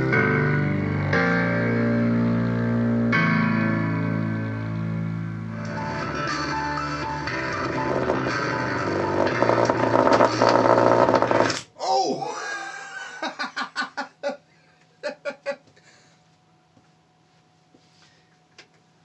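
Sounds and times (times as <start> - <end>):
distorted guitar through speaker: 0.0 - 11.6
man laughing: 12.0 - 15.7.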